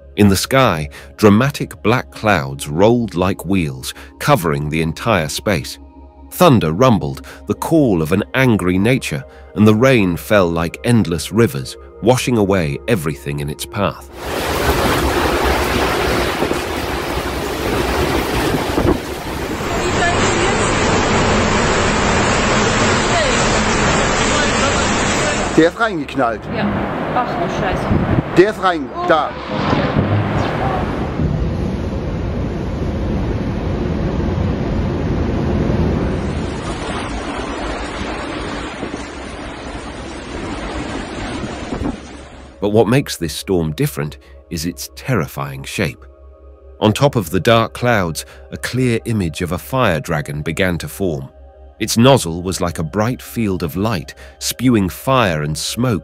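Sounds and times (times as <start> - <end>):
wind buffeting microphone: 14.2 - 21.4, 26.4 - 42.6.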